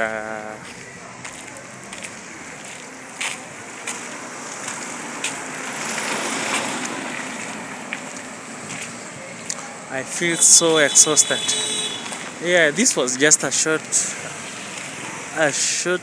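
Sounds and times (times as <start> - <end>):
rushing street noise hiss: 0.0 - 16.0.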